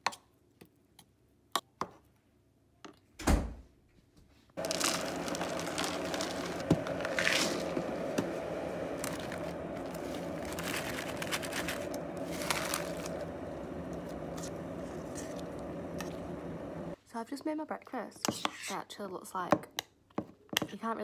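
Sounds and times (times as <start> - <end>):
plastic packaging crinkling: 4.6 - 16.3
steady background hum: 4.6 - 17.0.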